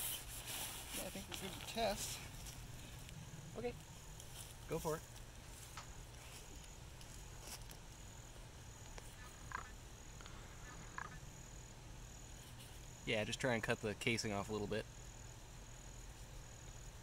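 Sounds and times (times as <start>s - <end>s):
high-pitched insect chirp: 0.0s - 17.0s
low steady hum: 0.0s - 17.0s.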